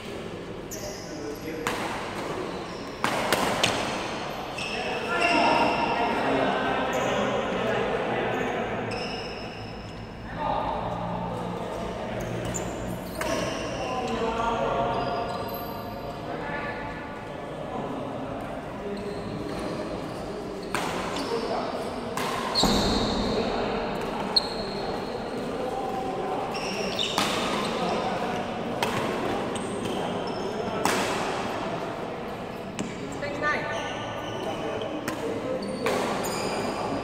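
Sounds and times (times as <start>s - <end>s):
voices chattering: 0.0s - 37.0s
shoes squeaking on court floor: 0.6s - 5.9s, 8.4s - 10.0s, 12.2s - 14.2s, 14.8s - 16.0s, 18.9s - 23.4s, 24.0s - 28.3s, 29.3s - 30.8s, 32.5s - 37.0s
rackets hitting shuttlecock: 1.6s - 4.1s, 22.1s - 23.3s, 26.9s - 27.8s, 30.8s - 31.4s, 35.0s - 36.7s.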